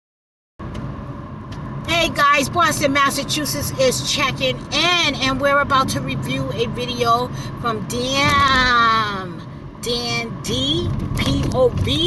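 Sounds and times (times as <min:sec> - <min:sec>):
low background rumble: 0:00.6 - 0:12.0.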